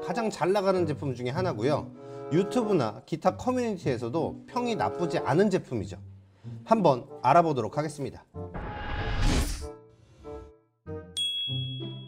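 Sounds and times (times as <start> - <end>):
bright chime-like ding: 11.2 - 12.0.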